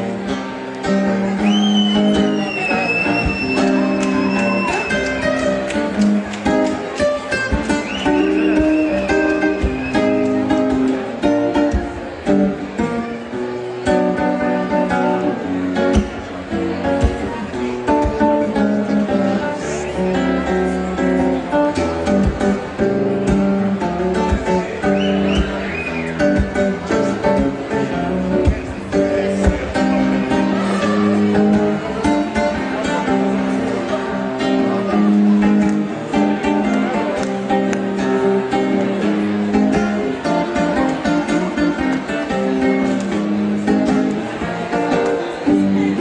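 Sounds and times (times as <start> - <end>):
acoustic guitar playing: 0.0 - 46.0
thin high whistle-like tone: 1.4 - 5.1, 7.8 - 9.1.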